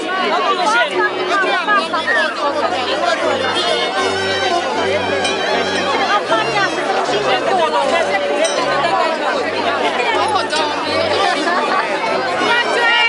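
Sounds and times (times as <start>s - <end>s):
crowd talking: 0.0s - 13.0s
low bass music: 1.0s - 13.0s.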